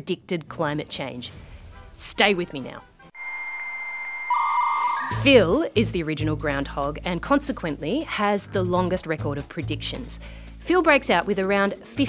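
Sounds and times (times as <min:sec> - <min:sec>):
buzzing tone: 0:03.2 - 0:05.3
steady high electronic tone: 0:03.2 - 0:05.3.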